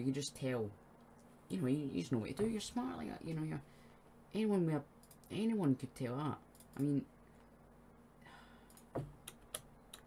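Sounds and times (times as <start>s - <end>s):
computer keyboard keys clicking: 6.5s - 6.9s
soft breath: 8.2s - 8.9s.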